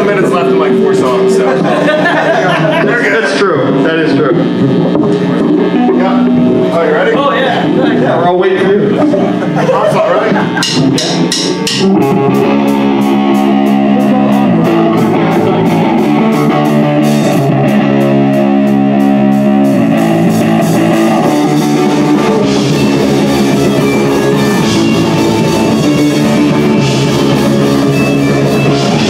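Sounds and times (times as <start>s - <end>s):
punk band playing fast riff: 0.0s - 29.0s
drumstick count-in clicks: 10.6s - 11.9s.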